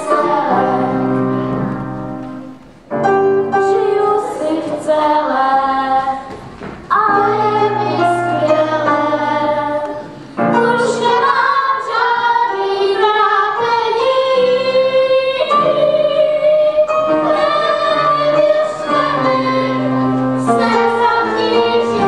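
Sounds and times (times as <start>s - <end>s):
children singing: 0.0s - 2.2s, 3.6s - 22.0s
piano accompaniment: 0.0s - 22.0s.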